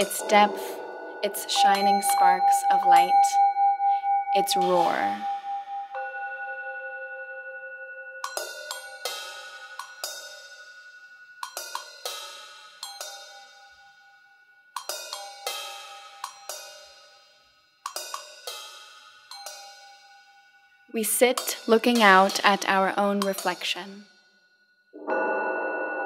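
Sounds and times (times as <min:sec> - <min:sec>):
cymbal struck with mallets: 0:00.0 - 0:06.1, 0:08.2 - 0:13.8, 0:14.8 - 0:17.3, 0:17.9 - 0:23.8
singing bowl ringing: 0:00.0 - 0:17.0, 0:23.2 - 0:26.0.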